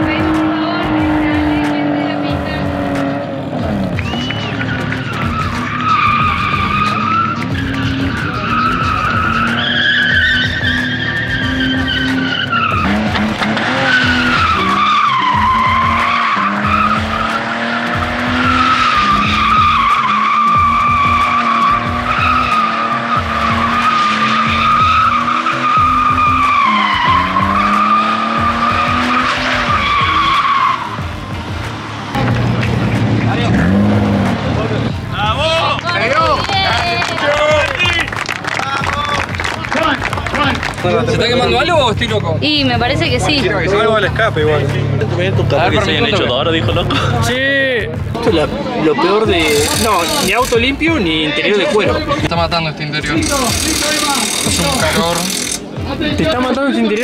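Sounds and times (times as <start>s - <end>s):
car engine revving: 0.0s - 57.0s
tyres squealing: 3.7s - 32.1s, 48.3s - 57.0s.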